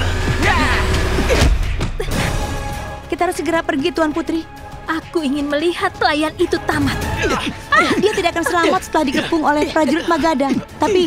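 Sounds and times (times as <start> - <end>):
dramatic background music: 0.0 - 11.0
people shouting: 0.3 - 1.3, 7.0 - 11.0.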